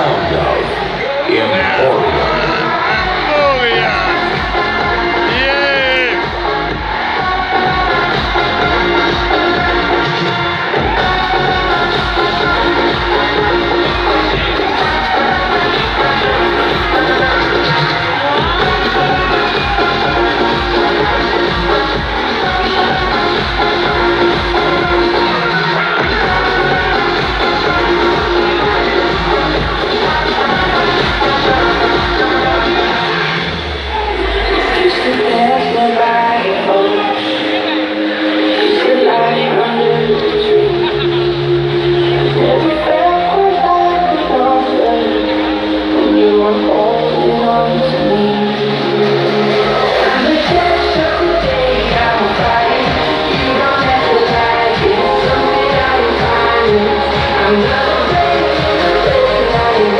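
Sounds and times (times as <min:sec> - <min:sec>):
deep bass: 0:00.0 - 0:36.6, 0:39.4 - 0:59.9
loud amplified live music: 0:00.0 - 0:59.9.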